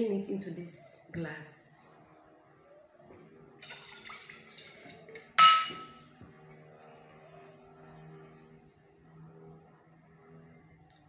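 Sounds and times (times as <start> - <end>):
sharp glass clink: 5.4 - 6.0.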